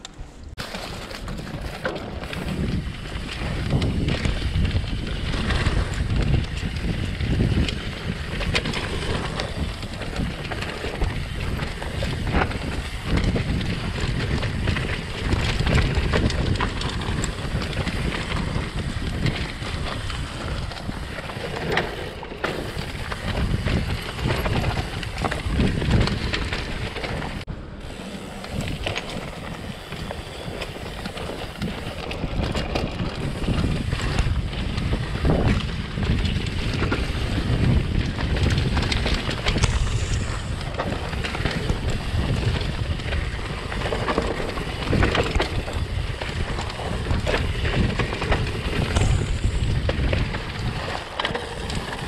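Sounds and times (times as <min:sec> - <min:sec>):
bike clicks knocks and rattles: 0:00.0 - 0:52.0
rumble of bike tyres on dirt: 0:00.2 - 0:52.0
wind buffeting microphone: 0:00.4 - 0:52.0.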